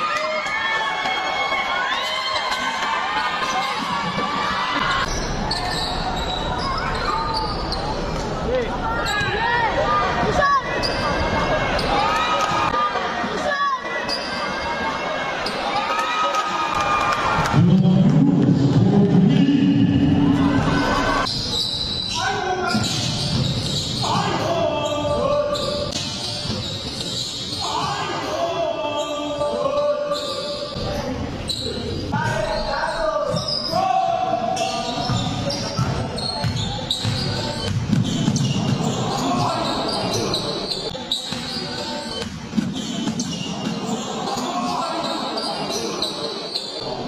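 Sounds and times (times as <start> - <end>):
voices and shouts: 0.0 - 26.0, 27.4 - 37.7, 38.4 - 42.2, 43.4 - 47.0
sneakers squeaking: 3.4 - 8.4, 9.0 - 9.4, 10.5 - 12.8, 13.8 - 16.0, 16.7 - 33.8, 34.4 - 47.0.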